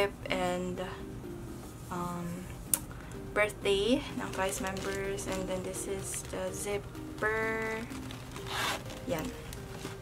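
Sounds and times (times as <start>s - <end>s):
zipper of fabric pouch: 7.8s - 10.0s.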